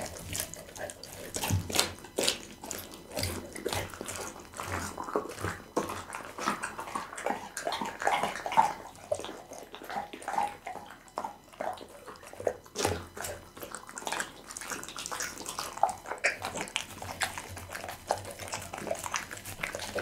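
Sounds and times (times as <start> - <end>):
dog chewing wetly: 0.0 - 20.0.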